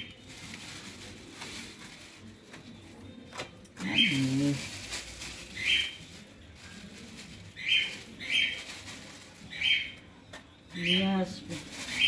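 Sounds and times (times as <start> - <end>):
powder shaken from bag: 0.0 - 2.7, 3.8 - 9.8, 11.4 - 12.0
plastic bag rustling: 0.0 - 12.0.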